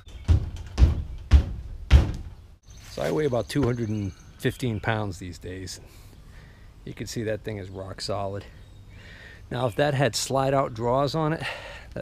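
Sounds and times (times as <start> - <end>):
feet thumping on steel cabinet: 0.2 - 2.4.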